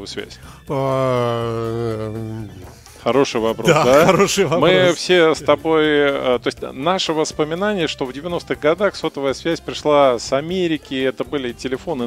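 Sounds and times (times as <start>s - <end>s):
man's drawn-out hesitation sound: 3.6s - 5.2s.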